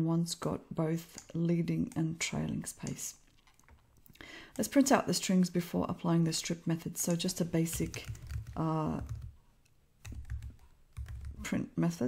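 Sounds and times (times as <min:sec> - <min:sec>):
computer keyboard typing: 0:07.1 - 0:09.4, 0:10.0 - 0:11.5.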